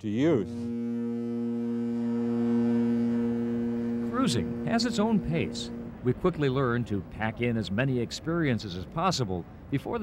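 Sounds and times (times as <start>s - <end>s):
ship horn blast: 0.0s - 6.6s.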